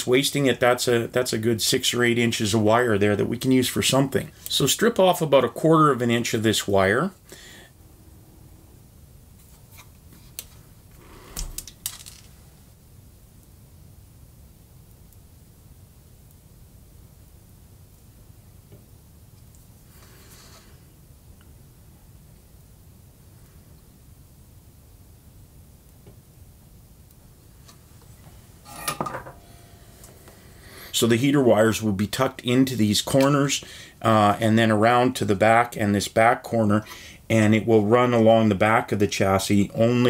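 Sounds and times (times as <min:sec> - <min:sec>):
short ring: 0:28.6 - 0:30.1.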